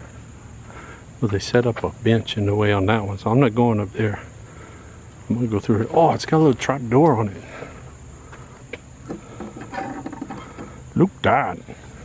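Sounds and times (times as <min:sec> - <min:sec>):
high-pitched insect drone: 0:02.0 - 0:12.0.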